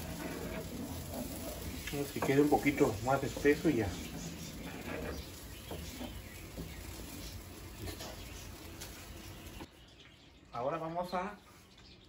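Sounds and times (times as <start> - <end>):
wooden spoon scraping a skillet: 0.0 - 9.7.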